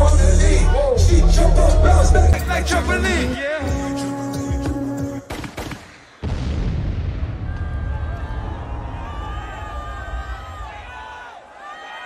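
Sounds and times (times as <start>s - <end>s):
loud boom with deep rumble: 6.2s - 10.4s.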